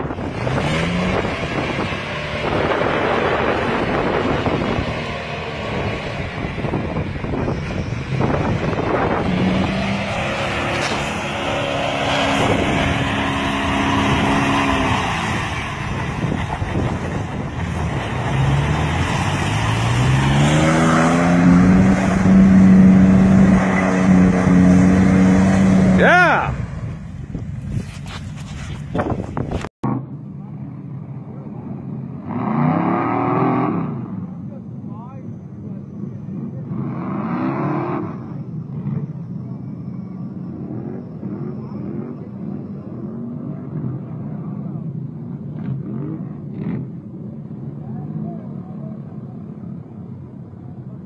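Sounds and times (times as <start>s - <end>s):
off-road vehicle engine revving: 0.0s - 27.1s, 28.9s - 51.0s
rushing mud and water: 0.0s - 27.4s.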